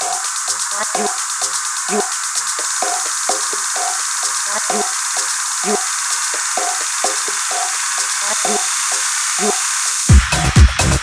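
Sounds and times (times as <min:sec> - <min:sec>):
techno track: 0:00.0 - 0:08.8, 0:09.4 - 0:11.0
hi-hats hissing: 0:00.0 - 0:11.0.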